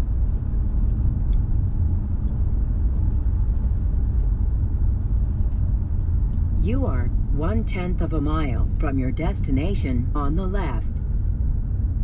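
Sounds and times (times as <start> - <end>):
car cabin road rumble: 0.0 - 12.0.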